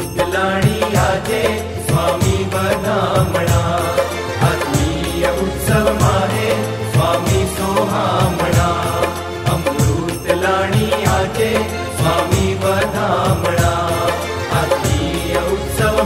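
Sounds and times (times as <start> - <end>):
devotional melody: 0.0 - 16.0.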